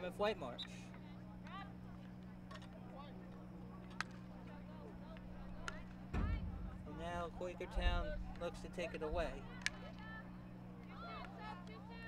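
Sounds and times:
steady low hum: 0.0 - 12.0
distant shouts: 0.5 - 12.0.

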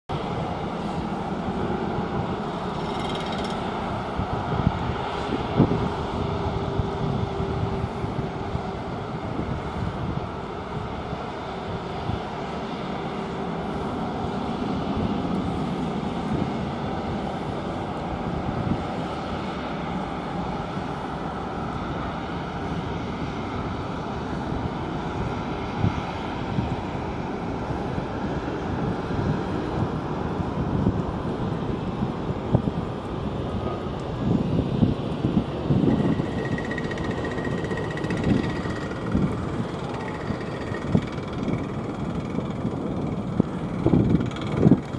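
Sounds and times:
distant jet airliners taxiing: 0.1 - 44.9
wind buffeting microphone: 0.1 - 44.9.

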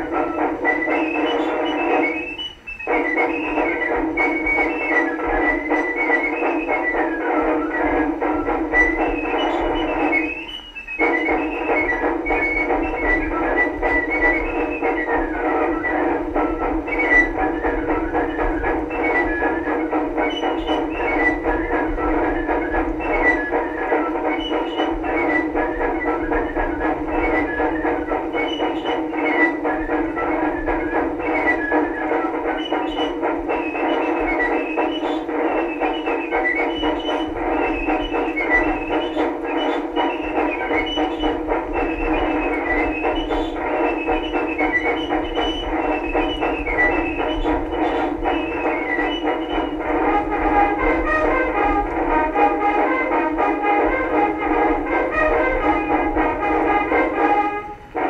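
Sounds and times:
old instrumental record on phonograph: 0.0 - 58.0.

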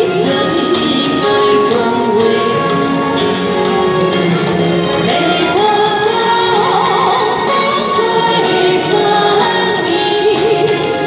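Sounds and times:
woman singing into microphone: 0.0 - 3.8, 4.9 - 11.0.

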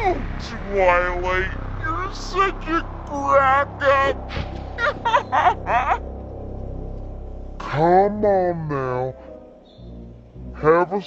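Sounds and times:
steady low hum: 0.0 - 10.8.

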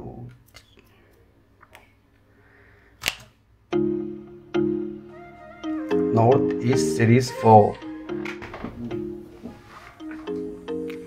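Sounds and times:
music with held note: 3.7 - 11.0.

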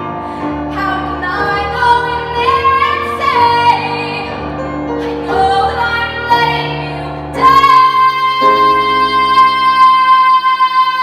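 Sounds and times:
instrumental accompaniment: 0.0 - 10.9
woman singing a long high note: 5.2 - 11.0.

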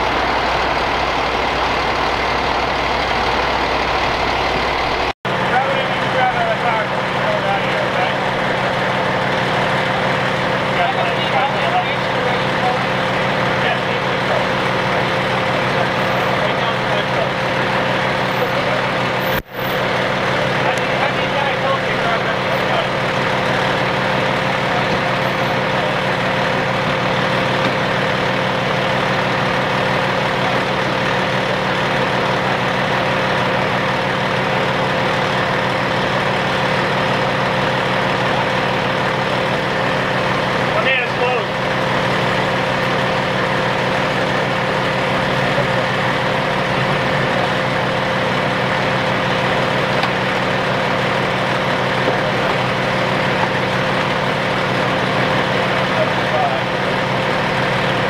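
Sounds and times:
engine idling: 0.0 - 58.0.

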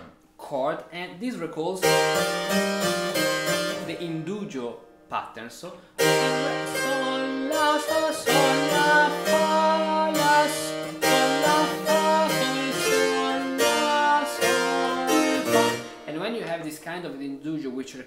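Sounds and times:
harpsichord playing chords: 1.8 - 4.6, 6.0 - 16.2.

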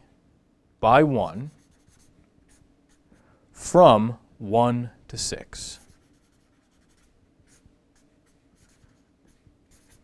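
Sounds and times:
marker scratching on paper: 1.3 - 3.1, 5.8 - 10.0.

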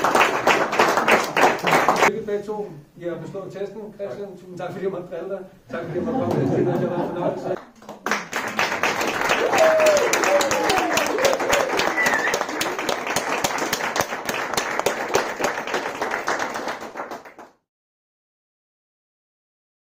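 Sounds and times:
guests applauding: 0.0 - 2.1, 7.6 - 17.6.

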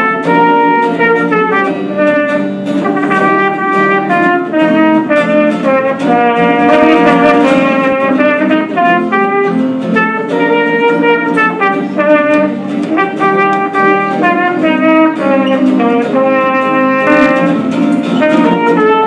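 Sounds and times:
acoustic guitar strumming: 0.0 - 19.0
trumpet melody: 0.0 - 19.0.

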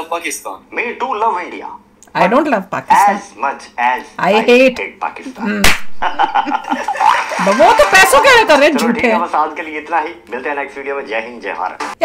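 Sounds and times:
sharp smack: 5.6 - 6.0.

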